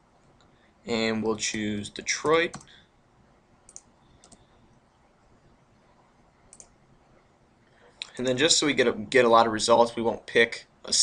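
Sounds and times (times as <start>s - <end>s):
computer mouse clicks: 3.7s - 4.5s, 6.5s - 6.8s.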